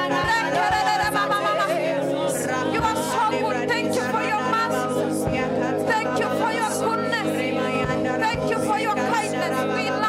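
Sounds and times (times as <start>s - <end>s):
solo singing voice: 0.0s - 10.0s
sustained musical accompaniment: 0.0s - 10.0s.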